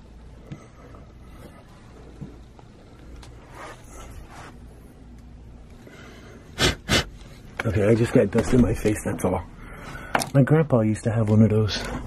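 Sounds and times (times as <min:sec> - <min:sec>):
man blowing out breath: 0:06.0 - 0:07.2.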